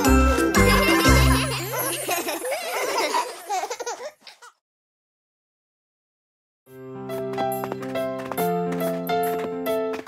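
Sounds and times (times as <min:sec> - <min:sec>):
cartoon song music: 0:00.0 - 0:02.4
characters giggling and laughing: 0:00.0 - 0:04.6.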